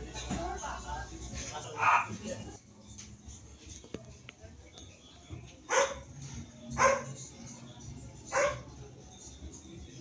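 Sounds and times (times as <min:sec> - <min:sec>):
dog barking: 0:01.8 - 0:02.2, 0:05.7 - 0:06.1, 0:06.8 - 0:07.2, 0:08.3 - 0:08.7.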